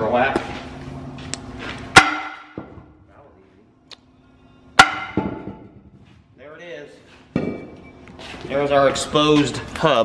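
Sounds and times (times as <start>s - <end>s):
sledgehammer clanging on steel drum: 2.0s - 2.8s, 4.8s - 5.7s.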